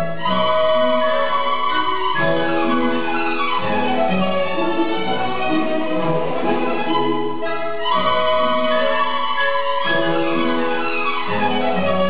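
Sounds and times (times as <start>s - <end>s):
classical ballet music: 0.0s - 12.0s.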